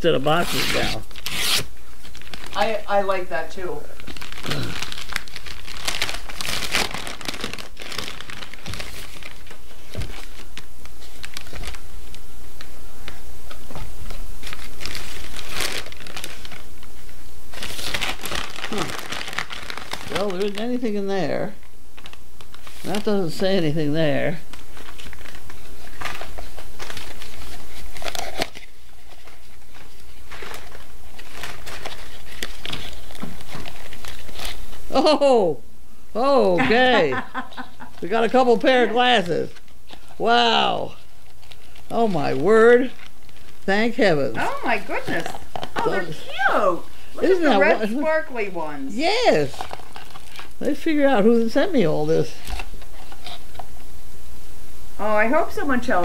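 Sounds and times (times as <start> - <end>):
paper envelope crinkling: 0.2 - 2.8, 3.9 - 12.2, 13.7 - 23.5, 24.2 - 34.8, 36.6 - 53.8.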